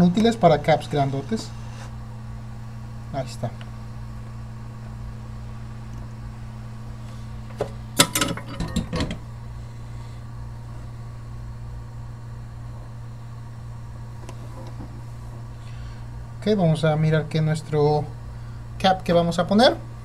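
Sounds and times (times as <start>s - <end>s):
low electrical hum: 0.0s - 20.0s.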